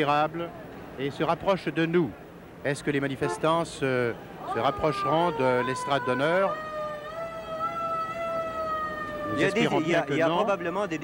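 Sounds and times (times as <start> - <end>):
siren long held tone: 4.5 - 11.0.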